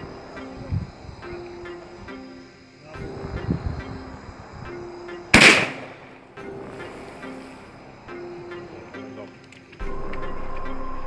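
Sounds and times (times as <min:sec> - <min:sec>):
background music: 0:00.0 - 0:11.0
loud gunshot: 0:05.4 - 0:06.2.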